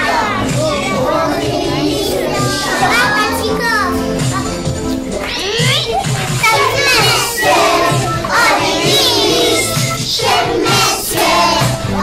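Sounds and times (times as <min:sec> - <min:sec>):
young children chattering: 0:00.0 - 0:10.2
music playing: 0:00.0 - 0:12.0.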